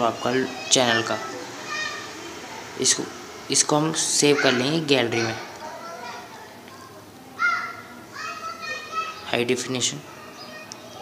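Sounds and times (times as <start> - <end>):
child calling out: 0.4 - 2.1, 7.4 - 9.3.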